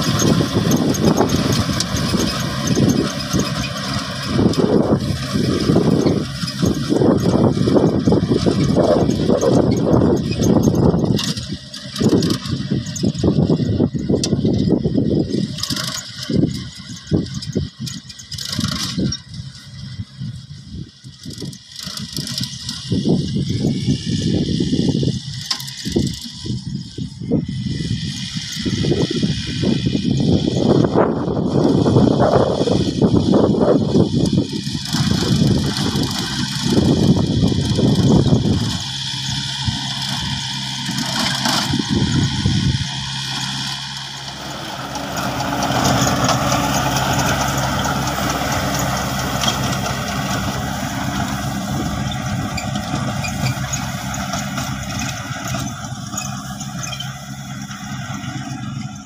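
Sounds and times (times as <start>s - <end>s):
low buffeting: 0.0s - 15.6s, 28.6s - 59.0s
tiller churning soil: 0.0s - 59.0s
tractor engine under load: 0.0s - 59.0s.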